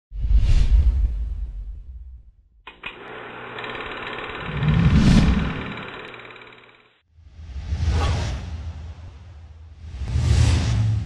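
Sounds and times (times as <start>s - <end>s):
film projector clattering: 2.7s - 7.0s.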